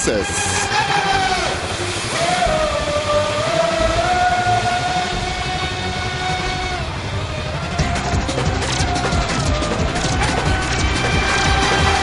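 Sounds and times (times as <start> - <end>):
high-pitched electric motor whine: 0.0 - 12.0.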